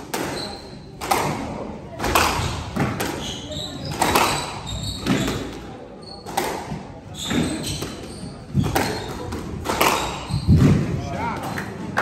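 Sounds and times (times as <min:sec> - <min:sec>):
squash ball knocks echoing: 0:00.0 - 0:03.2, 0:03.8 - 0:11.4.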